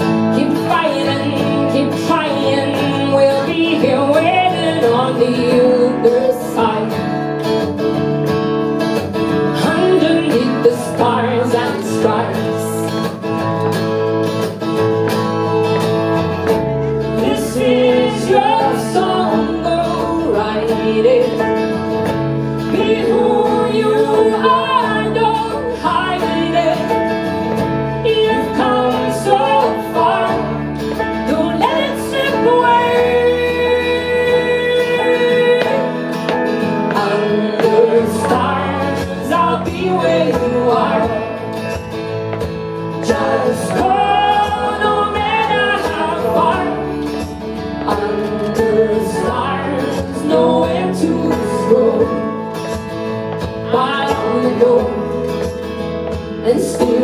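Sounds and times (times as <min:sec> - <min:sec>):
woman singing lead vocal: 0:00.0 - 0:07.6, 0:09.4 - 0:13.3, 0:16.4 - 0:57.0
live band music: 0:00.0 - 0:57.0
low bass notes: 0:00.0 - 0:57.0.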